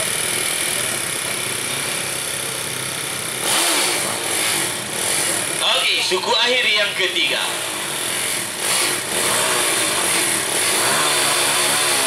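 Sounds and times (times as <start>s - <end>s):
motorcycle engine running and revving: 0.0s - 6.2s, 7.2s - 12.0s.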